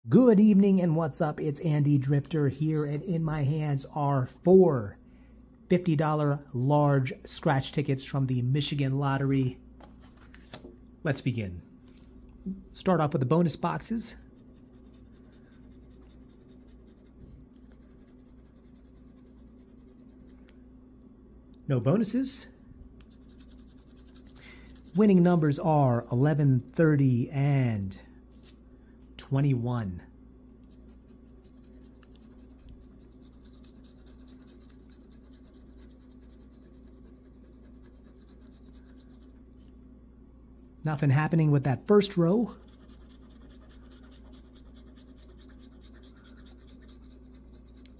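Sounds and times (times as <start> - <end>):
low steady hum: 0.0 - 47.9
coin scratching lottery ticket: 14.3 - 20.2, 23.1 - 25.6, 30.7 - 39.3, 42.5 - 47.9.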